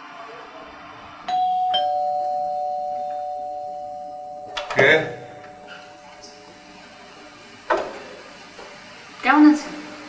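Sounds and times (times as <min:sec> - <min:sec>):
two-note doorbell chime: 0:01.3 - 0:07.4.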